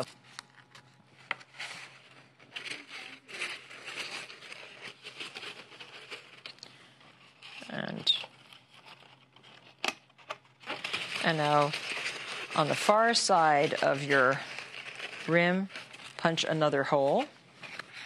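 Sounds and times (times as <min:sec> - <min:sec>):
paper crinkling and rustling: 0:00.0 - 0:18.0.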